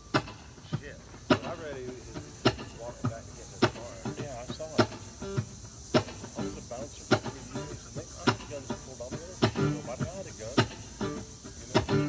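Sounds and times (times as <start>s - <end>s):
steady sharp beat: 0.0s - 12.0s.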